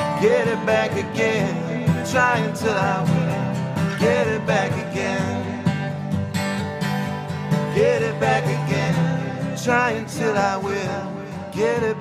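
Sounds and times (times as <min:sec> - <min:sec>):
men singing: 0:00.0 - 0:06.1, 0:07.7 - 0:12.0
strummed acoustic guitar: 0:00.0 - 0:12.0.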